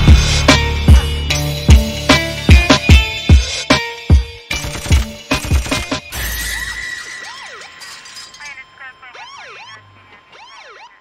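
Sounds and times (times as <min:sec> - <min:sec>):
hip hop beat: 0:00.0 - 0:06.1
swooping electronic tones: 0:06.6 - 0:11.0.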